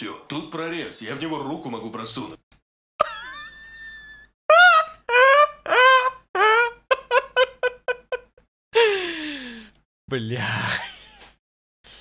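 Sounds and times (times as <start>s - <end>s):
high-pitched laughter: 3.0s - 8.4s.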